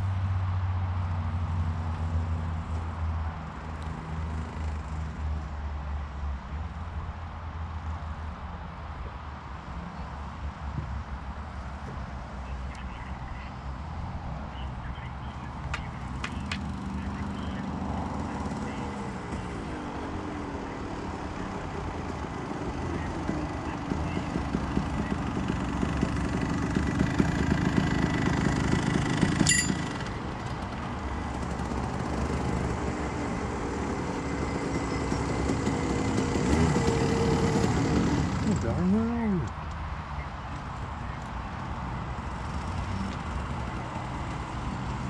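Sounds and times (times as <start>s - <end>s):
go-kart engines revving: 3.4s - 5.5s, 12.4s - 45.0s.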